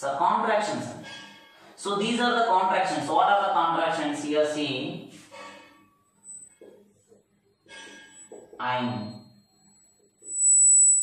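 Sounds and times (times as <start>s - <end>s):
high-pitched steady whine: 0.0s - 11.0s.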